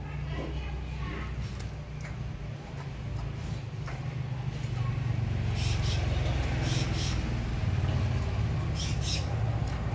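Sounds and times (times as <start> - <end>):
low engine rumble: 0.0 - 9.9.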